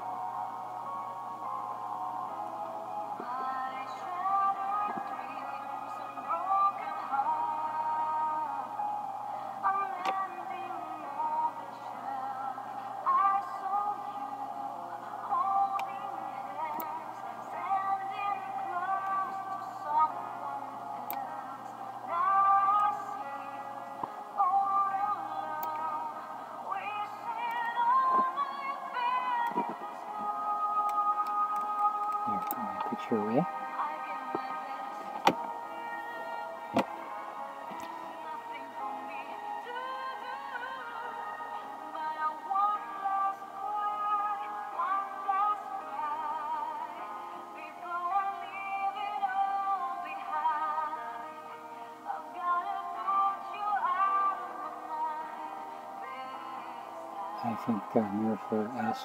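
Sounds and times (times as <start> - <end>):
song through small speaker: 0.0 - 59.0.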